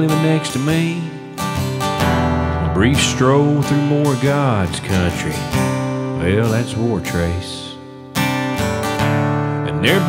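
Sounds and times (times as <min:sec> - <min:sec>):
person singing: 0:00.0 - 0:01.4, 0:02.6 - 0:05.5, 0:06.1 - 0:07.8, 0:09.6 - 0:10.0
acoustic guitar strumming: 0:00.0 - 0:10.0.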